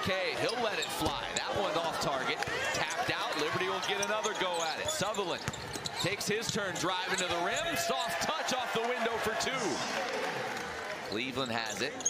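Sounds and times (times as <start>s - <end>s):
player and crowd voices: 0.0s - 12.0s.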